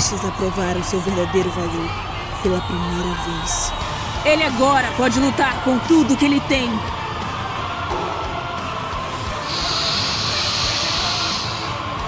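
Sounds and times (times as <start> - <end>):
background music: 0.0 - 12.0
steam-like hissing: 9.4 - 11.9.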